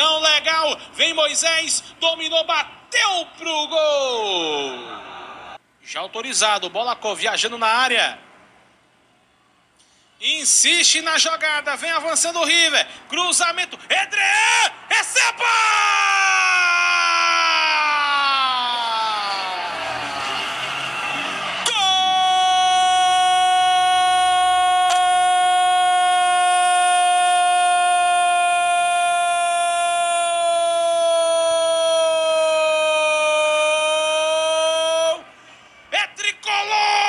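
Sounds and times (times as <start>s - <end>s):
commentator shouting: 10.7s - 19.7s, 21.6s - 35.2s, 36.0s - 37.0s.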